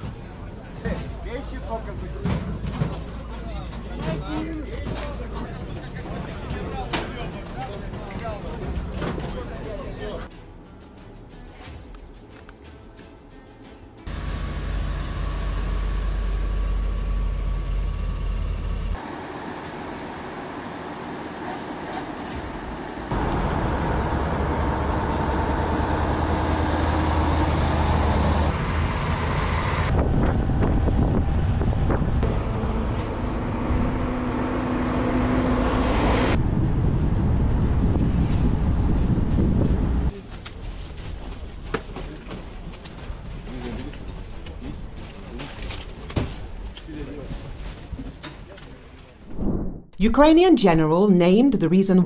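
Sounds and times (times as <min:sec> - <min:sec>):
trucks driving by: 0:14.1 - 0:40.1.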